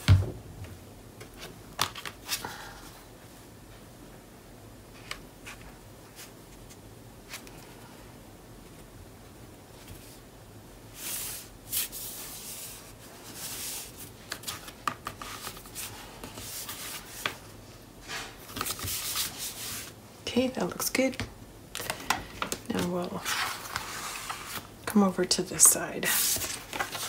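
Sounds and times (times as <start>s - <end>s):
paper rustling and rubbing: 11.0s - 19.9s, 22.8s - 24.7s, 25.6s - 27.0s
person speaking: 22.6s - 23.5s, 24.8s - 26.5s.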